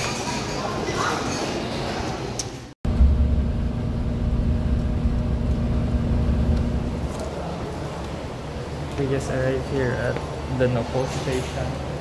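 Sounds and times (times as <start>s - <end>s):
bus engine rumbling: 2.9s - 7.4s.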